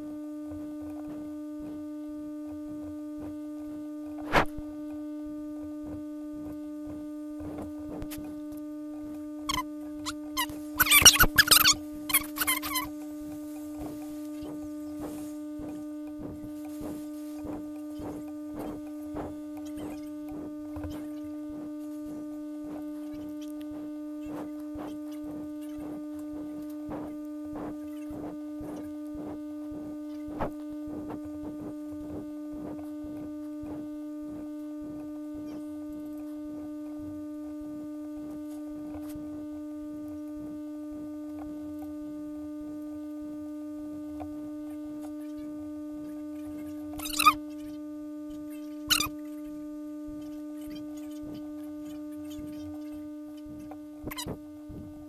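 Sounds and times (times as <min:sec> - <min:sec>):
electrical hum: 0:00.0 - 0:55.0.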